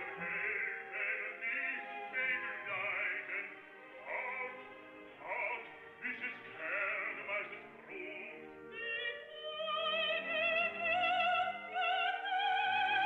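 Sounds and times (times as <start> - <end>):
operatic singing with accompaniment: 0.0 - 13.0.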